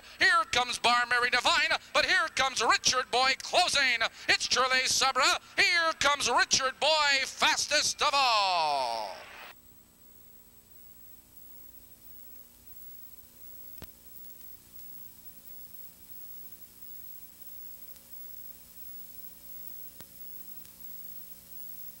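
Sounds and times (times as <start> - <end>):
faint hiss and electrical hum: 0.0 - 22.0
faint click: 13.4 - 15.6, 16.6 - 18.2, 19.6 - 21.9.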